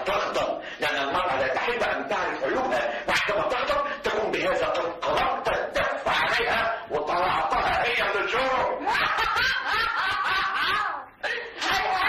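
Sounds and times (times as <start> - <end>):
woman laughing heartily: 8.8 - 11.6.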